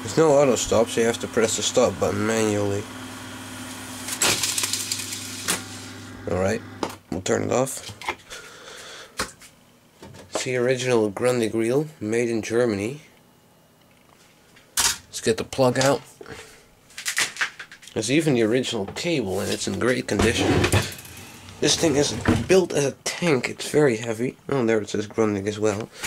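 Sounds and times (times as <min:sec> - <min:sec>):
low motor hum: 0:00.0 - 0:07.1.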